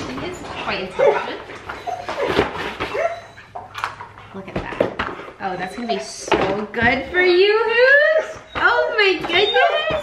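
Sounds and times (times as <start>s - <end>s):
dog whining: 0.2s - 4.1s, 5.4s - 6.4s, 7.8s - 10.0s.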